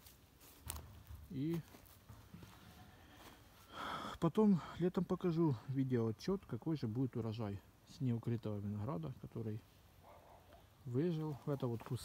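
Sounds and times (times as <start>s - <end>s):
faint outdoor background: 0.0s - 12.0s
person speaking: 10.8s - 12.0s.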